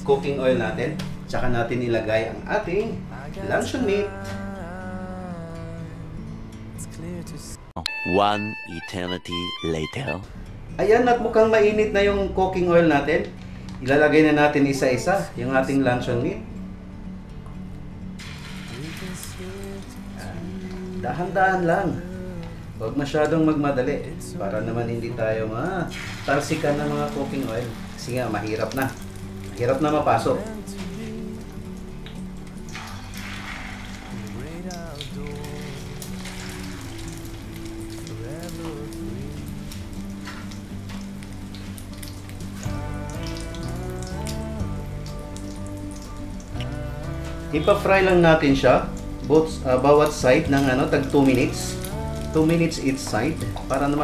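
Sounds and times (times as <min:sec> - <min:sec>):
background music with held notes: 0:00.0 - 0:54.0
oil sizzling in frying pan: 0:18.2 - 0:21.6, 0:25.8 - 0:47.5, 0:50.0 - 0:54.0.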